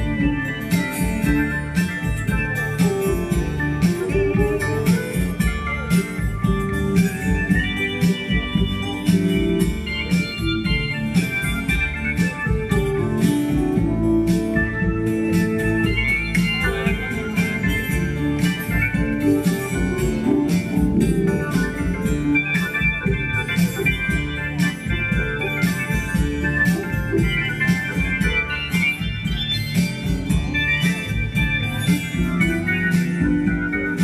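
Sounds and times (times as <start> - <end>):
slide guitar playing: 0.0 - 34.0
steady low beat: 0.0 - 34.0.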